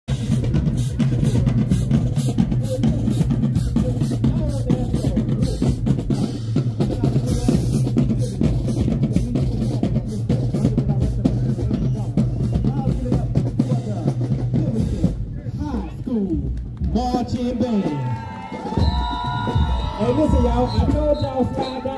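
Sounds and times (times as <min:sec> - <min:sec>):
bass drums: 0:00.1 - 0:21.9.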